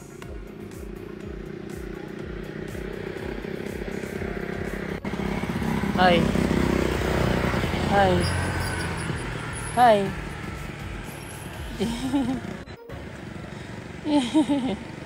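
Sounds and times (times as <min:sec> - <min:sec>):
background music: 0:00.0 - 0:08.4, 0:09.4 - 0:15.0
motorcycle passing: 0:00.0 - 0:15.0
road traffic noise: 0:00.0 - 0:15.0.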